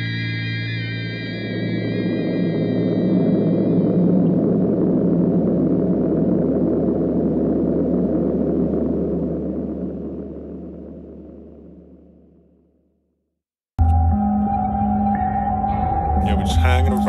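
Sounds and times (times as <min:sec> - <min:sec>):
low rumbling drone: 0:00.0 - 0:13.0, 0:13.8 - 0:17.0
steady hum: 0:00.0 - 0:13.0.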